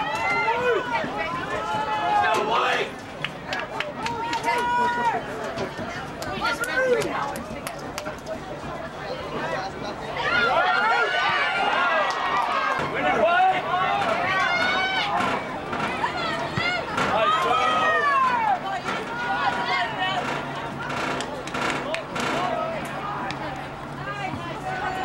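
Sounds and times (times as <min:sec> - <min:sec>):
spectators shouting: 0:00.0 - 0:03.0, 0:04.0 - 0:05.7, 0:10.1 - 0:25.0.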